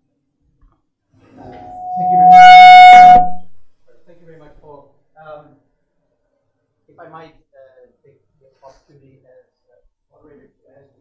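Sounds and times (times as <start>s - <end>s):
microphone feedback howling: 1.4s - 3.6s.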